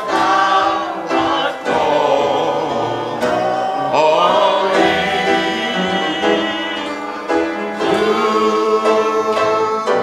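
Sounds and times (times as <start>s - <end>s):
gospel singing with instruments: 0.0s - 10.0s.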